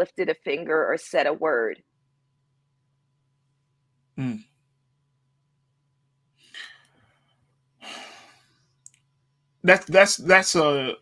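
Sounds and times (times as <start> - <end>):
person sighing: 4.2 - 4.4, 7.8 - 8.4.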